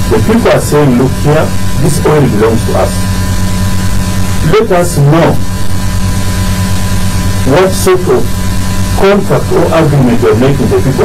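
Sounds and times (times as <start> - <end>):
person speaking: 0.0 - 3.1, 4.4 - 5.5, 7.4 - 8.4, 9.0 - 11.0
electrical mains hum: 0.0 - 11.0.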